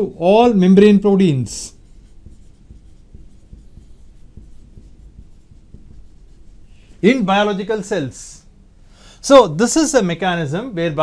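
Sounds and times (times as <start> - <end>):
marker pen writing on whiteboard: 0.5 - 7.5.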